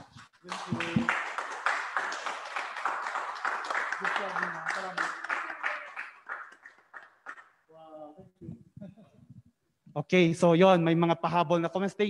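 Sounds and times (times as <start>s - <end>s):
hands clapping: 0.0s - 7.6s.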